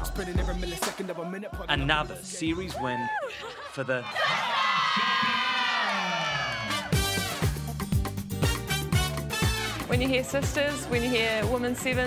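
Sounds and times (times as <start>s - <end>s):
women cheering and shouting: 2.6s - 7.0s
music track with a beat: 7.0s - 12.0s.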